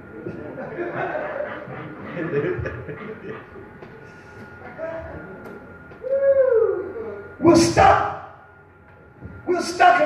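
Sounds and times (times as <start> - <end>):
low room noise in a hall: 0.0 - 10.0.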